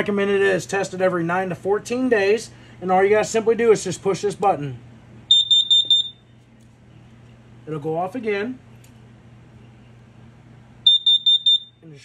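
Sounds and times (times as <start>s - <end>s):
shrill high-pitched alarm beeps: 5.3s - 6.2s, 10.8s - 11.8s.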